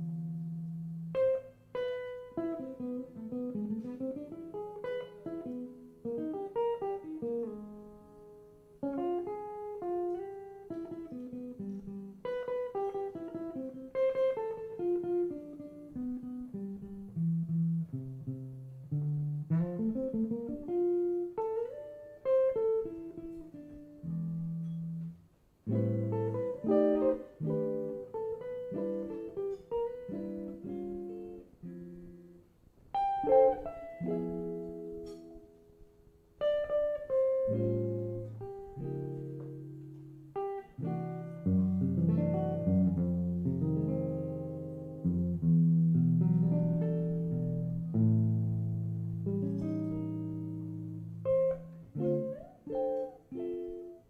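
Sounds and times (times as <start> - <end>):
jazz guitar playing slow waltz: 0.0 - 54.0.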